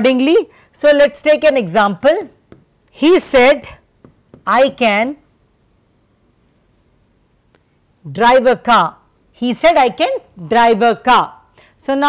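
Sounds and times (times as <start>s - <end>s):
pen scratching on a board: 3.7s - 6.2s.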